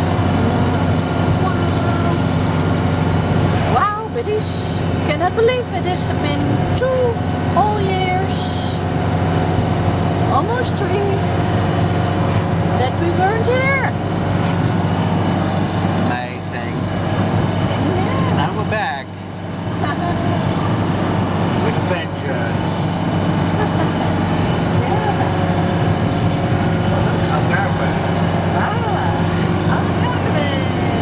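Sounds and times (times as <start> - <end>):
engine and road noise drone: 0.0 - 31.0
people talking: 0.4 - 2.4, 3.7 - 8.8, 12.8 - 14.0, 16.1 - 16.8, 17.8 - 19.1, 19.8 - 20.8, 21.6 - 23.0, 24.7 - 25.4, 26.8 - 31.0.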